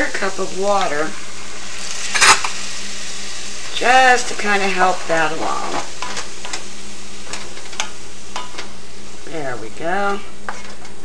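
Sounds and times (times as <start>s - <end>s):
meat sizzling in a skillet: 0.0s - 11.0s.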